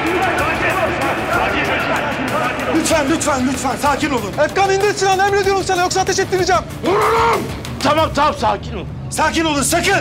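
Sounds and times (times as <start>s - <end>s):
low dramatic music: 0.0s - 10.0s.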